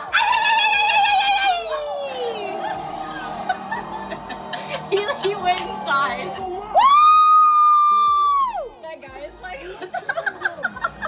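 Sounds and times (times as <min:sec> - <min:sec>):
woman screaming: 0:00.0 - 0:03.5.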